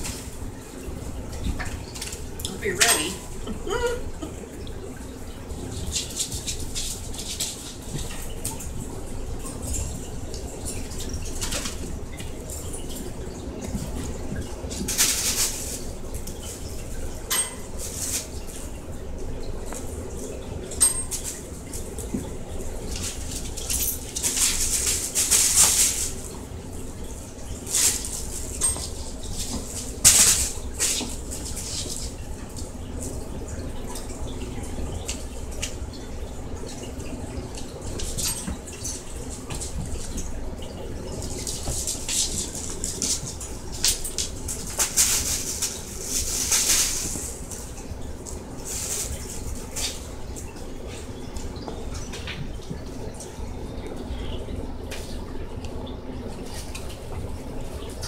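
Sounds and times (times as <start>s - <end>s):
animals scuffling on wooden floor: 4.7s - 35.9s, 36.6s - 54.0s.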